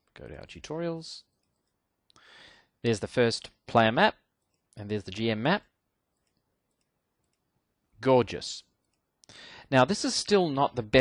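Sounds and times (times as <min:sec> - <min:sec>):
computer mouse clicks: 0:01.3 - 0:01.8, 0:06.1 - 0:07.5.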